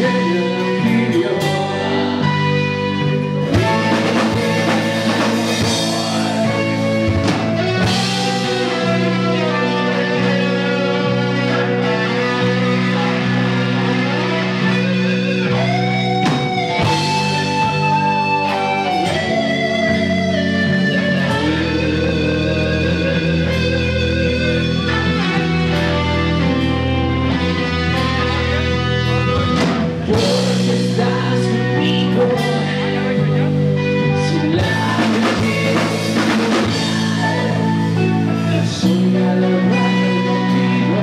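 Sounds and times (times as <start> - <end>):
live rock band: 0.0 - 41.0.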